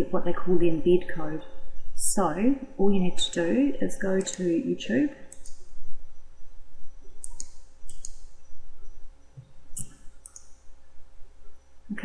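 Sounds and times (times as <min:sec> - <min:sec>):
faint steady hum: 0:00.0 - 0:12.0
computer mouse button clicking: 0:07.2 - 0:08.2.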